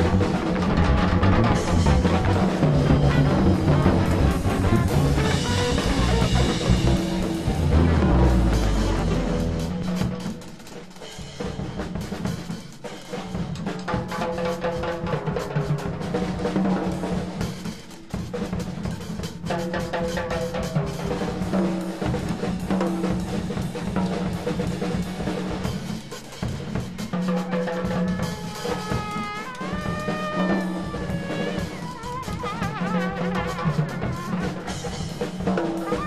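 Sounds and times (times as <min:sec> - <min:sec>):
bass guitar line: 0:00.0 - 0:10.3
electric guitar: 0:00.0 - 0:10.6, 0:27.5 - 0:36.0
trumpet: 0:00.0 - 0:10.6, 0:27.2 - 0:36.0
busy drum kit: 0:00.0 - 0:36.0.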